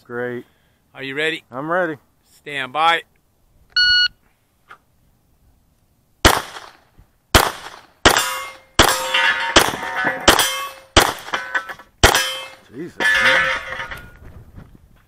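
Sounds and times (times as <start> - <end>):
shot timer beep: 3.8 - 4.1
pistol shots: 6.2 - 12.6
steel target ringing: 8.1 - 14.2.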